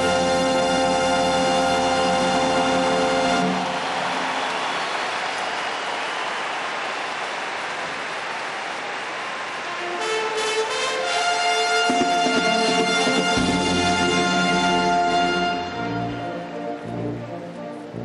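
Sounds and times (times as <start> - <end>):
brass band playing: 0.0 - 4.0, 9.7 - 18.0
audience applause: 2.1 - 11.2.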